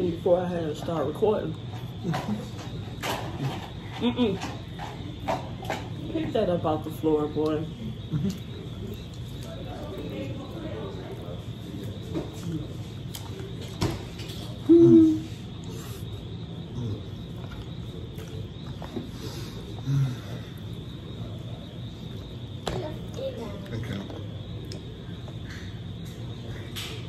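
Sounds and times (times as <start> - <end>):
person humming while eating: 14.6 - 15.3.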